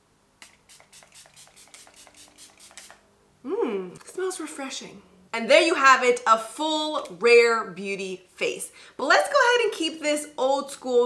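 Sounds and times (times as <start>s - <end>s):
spray bottle spritzes: 0.4s - 3.0s.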